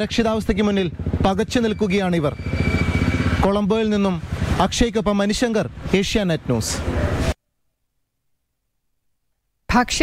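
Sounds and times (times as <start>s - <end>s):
men talking: 0.0s - 2.4s, 3.4s - 7.4s
vehicle engine running: 0.0s - 6.9s.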